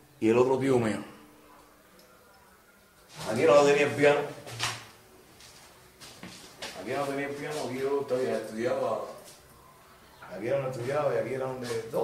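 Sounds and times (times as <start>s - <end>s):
man speaking: 0.2s - 1.2s, 3.2s - 4.4s, 6.8s - 9.3s, 10.2s - 12.0s.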